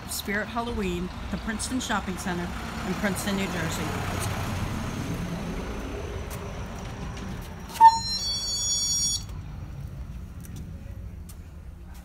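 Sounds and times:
door buzzer ping: 7.7s - 9.3s.

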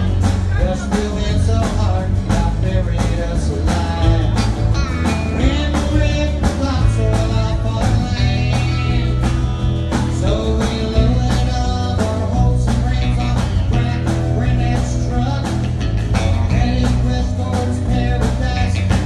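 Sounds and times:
acoustic guitar: 0.0s - 19.0s
bass: 0.0s - 19.0s
drums: 0.0s - 19.0s
electric guitar: 0.0s - 19.0s.

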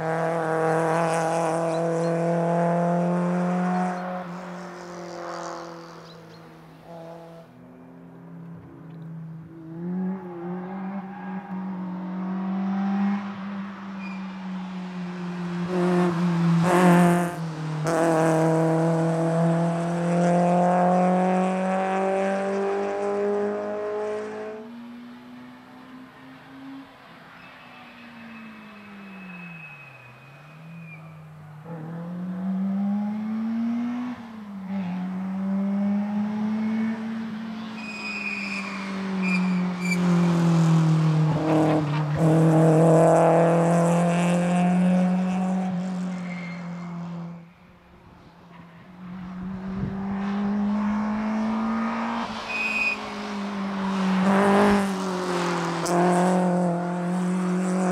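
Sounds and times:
race car engine at high revs: 0.0s - 7.4s, 8.5s - 27.0s, 31.5s - 47.4s, 48.5s - 57.9s.

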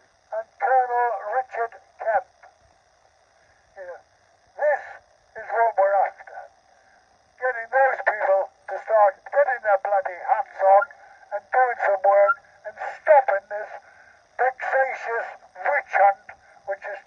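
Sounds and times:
man speaking through megaphone: 0.3s - 2.4s, 3.8s - 4.0s, 4.6s - 6.5s, 7.4s - 17.0s.

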